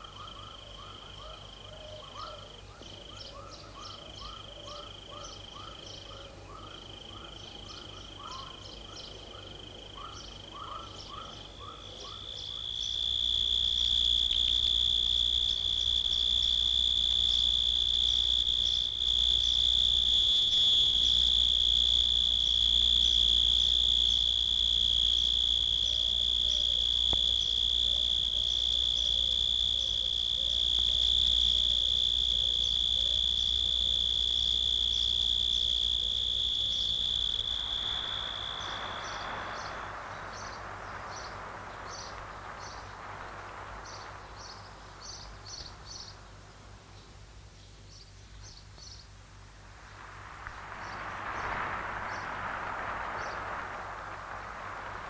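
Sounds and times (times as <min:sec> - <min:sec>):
high sustained electronic whine: 0:12.4 - 0:41.3.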